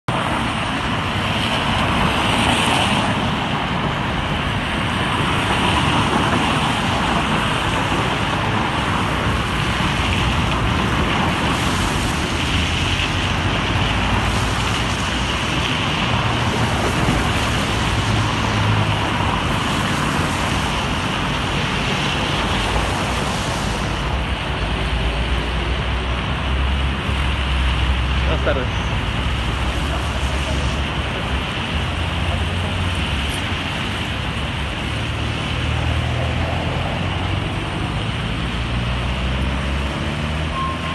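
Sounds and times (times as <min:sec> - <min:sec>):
traffic on wet road: 0:00.0 - 0:40.9
wind rumbling on microphone: 0:00.1 - 0:40.9.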